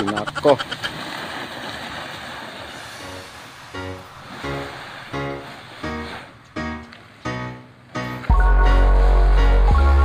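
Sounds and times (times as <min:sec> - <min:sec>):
hiss-like noise: 0:02.6 - 0:05.0.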